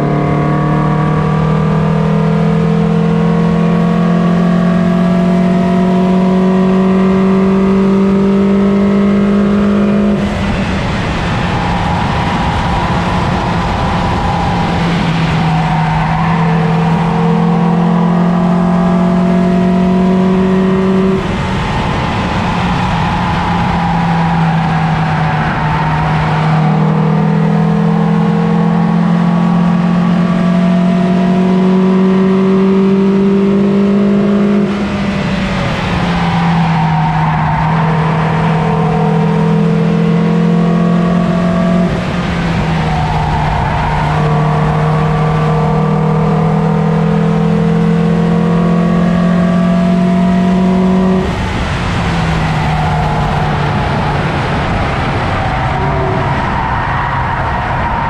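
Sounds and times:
car engine at high revs: 0.0s - 58.0s
road and wind noise: 0.0s - 58.0s.

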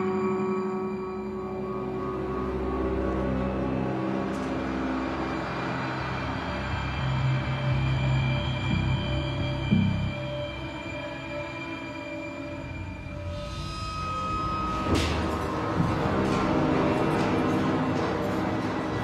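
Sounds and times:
suspenseful low drone: 0.0s - 19.0s.

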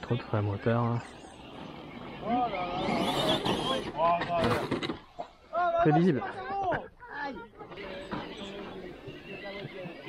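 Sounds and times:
men talking and exclaiming: 0.0s - 10.0s.

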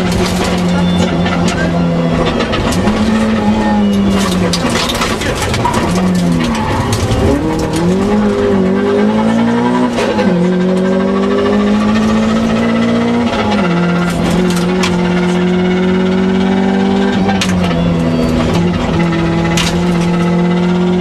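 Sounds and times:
rally car engine revving: 0.0s - 21.0s
tyre and road noise: 0.0s - 21.0s.

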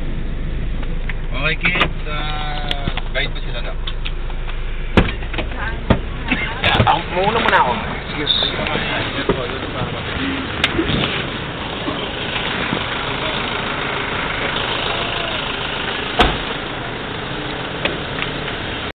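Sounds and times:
vehicle engine idling: 0.0s - 18.9s
people's voices: 4.7s - 18.0s
thump: 5.0s - 6.1s, 16.2s - 16.5s.

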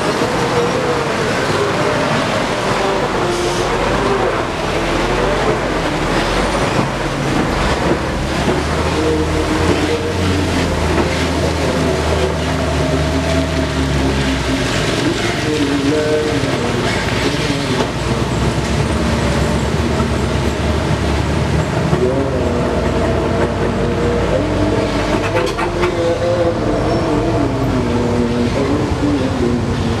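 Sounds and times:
diesel truck engines labouring: 0.0s - 30.0s.

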